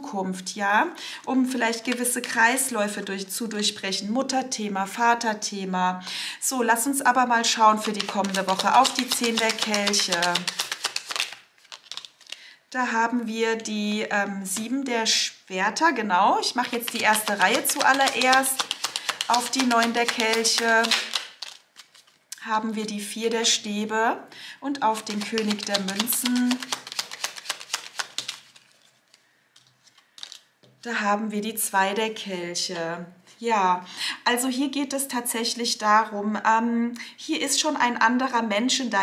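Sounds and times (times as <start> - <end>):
cards shuffled by hand: 7.7 - 12.4, 16.6 - 22.2, 24.9 - 30.8.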